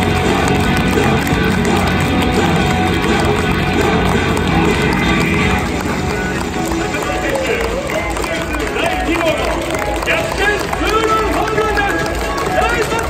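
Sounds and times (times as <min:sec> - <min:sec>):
crowd noise: 0:00.0 - 0:13.0
music over stadium sound system: 0:00.0 - 0:13.0
voices over loudspeakers: 0:00.0 - 0:13.0.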